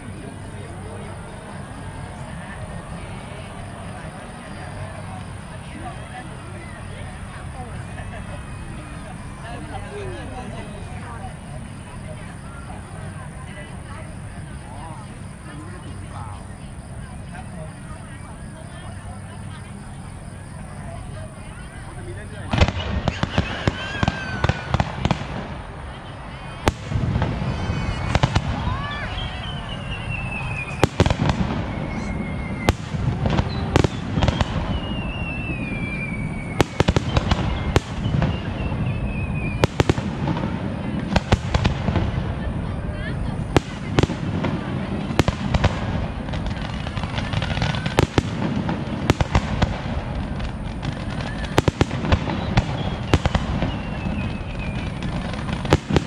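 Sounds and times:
fireworks bangs: 21.7s - 56.0s
fireworks whistles falling in pitch: 22.5s - 25.5s, 26.4s - 42.1s, 43.0s - 56.0s.

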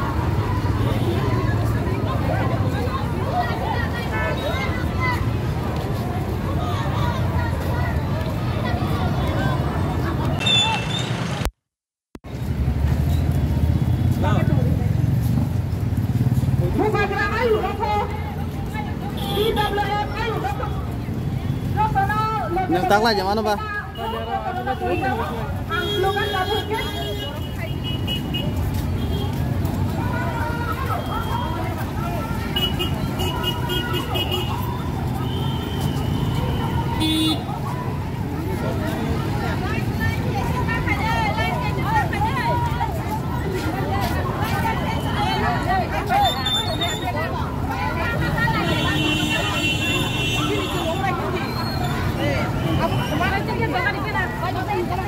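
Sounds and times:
people talking: 0.0s - 11.1s, 16.6s - 55.0s
crowd chatter: 0.0s - 11.5s, 12.3s - 55.0s
vehicle horns tooting: 10.3s - 11.4s, 23.9s - 29.4s, 32.5s - 37.6s, 48.5s - 53.4s
low rumble of road traffic: 12.2s - 55.0s.

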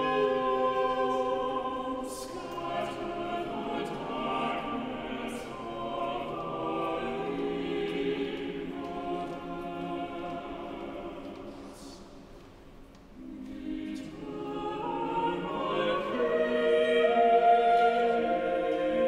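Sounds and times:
choir singing in cathedral: 0.0s - 19.0s.

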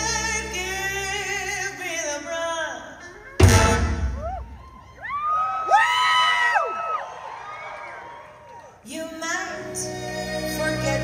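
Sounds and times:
audience cheering and whooping: 4.0s - 8.8s.

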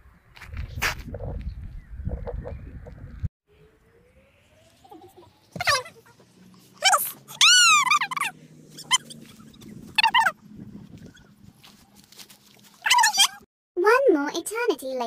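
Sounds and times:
animal whining: 5.6s - 10.4s.

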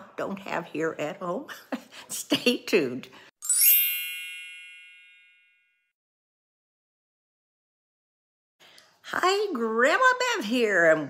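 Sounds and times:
bright chime: 3.4s - 5.9s.

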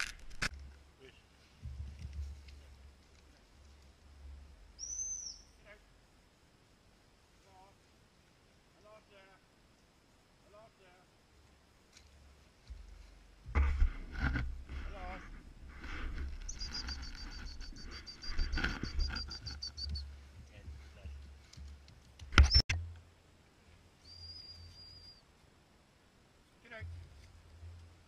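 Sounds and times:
rustling: 0.0s - 5.9s, 11.4s - 22.7s
high wavering whistle: 4.8s - 5.5s, 16.5s - 20.0s, 24.0s - 25.2s.

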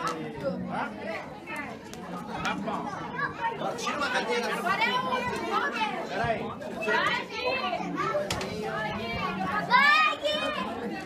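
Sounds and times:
adult chatter: 0.0s - 11.0s
children's excited voices: 1.2s - 11.0s.

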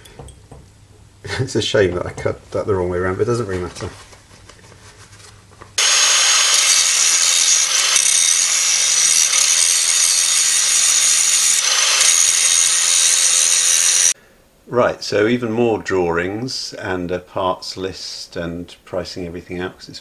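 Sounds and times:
angle grinder grinding steel: 5.8s - 14.2s.

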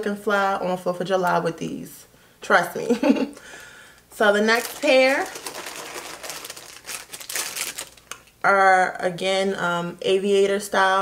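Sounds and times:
woman speaking: 0.0s - 3.3s, 4.1s - 5.5s, 8.4s - 11.0s.

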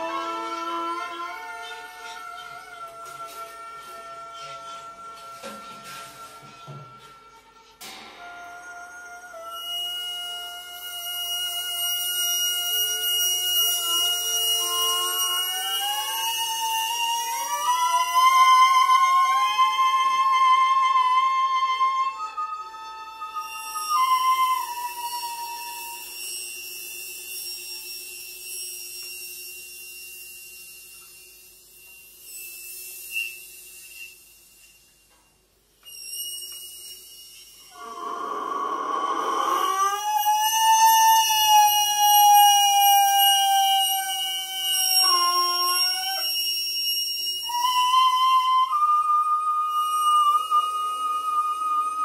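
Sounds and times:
improvised violin bassoon and percussion: 0.0s - 28.2s, 35.9s - 52.0s.

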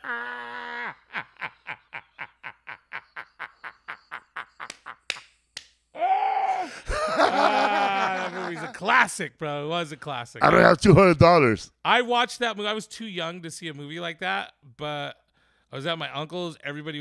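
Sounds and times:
men laughing hard: 0.0s - 5.2s, 6.7s - 8.8s.

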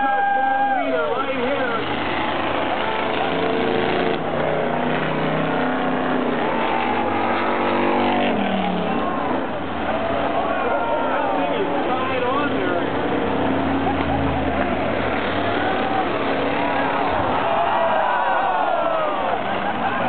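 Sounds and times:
race car engines revving: 0.0s - 20.0s
voices: 8.8s - 20.0s.

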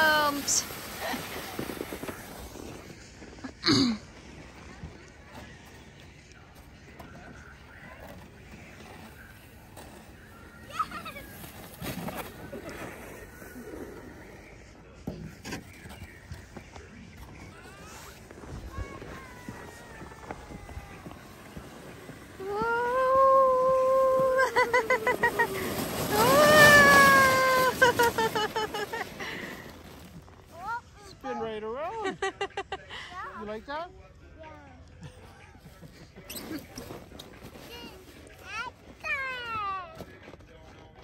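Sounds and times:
high-pitched squeals of excitement: 22.4s - 28.1s.

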